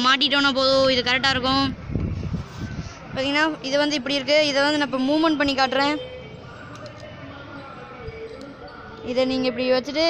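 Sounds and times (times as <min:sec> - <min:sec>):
faint background voices: 0:05.6 - 0:10.0.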